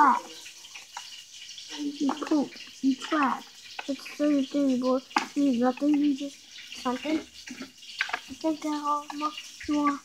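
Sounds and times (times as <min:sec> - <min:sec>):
boy speaking or rapping: 0:00.0 - 0:00.3, 0:01.8 - 0:07.3, 0:08.3 - 0:10.0.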